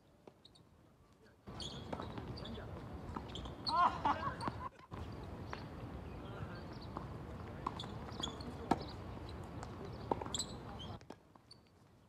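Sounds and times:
tennis balls struck and bouncing: 1.5 - 3.5, 6.7 - 11.7.

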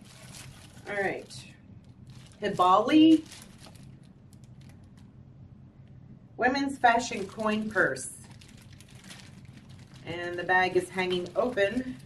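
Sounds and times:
plastic bag crinkling: 0.0 - 5.1, 6.9 - 12.0.

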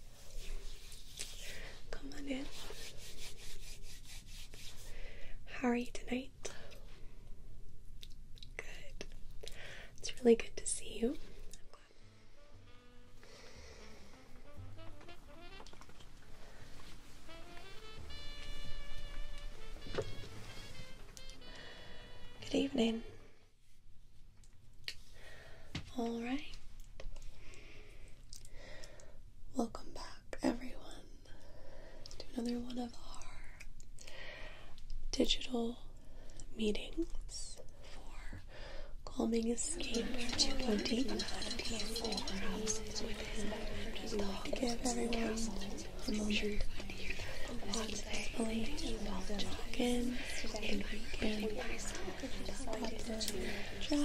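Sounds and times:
brisk rhythmic rubbing: 0.0 - 4.9, 39.5 - 54.0
woman whispering: 1.2 - 2.8, 5.4 - 6.8, 8.5 - 9.1, 10.0 - 11.9, 22.4 - 23.1, 25.9 - 26.6, 29.6 - 31.4, 32.1 - 33.7, 36.5 - 54.0.

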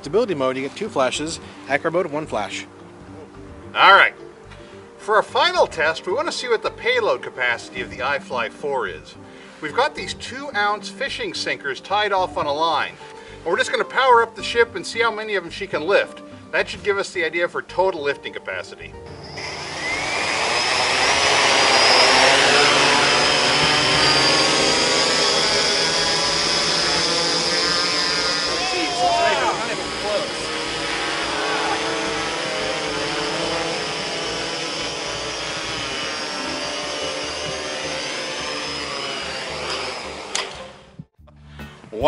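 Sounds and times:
drone motors whining: 19.0 - 41.1.

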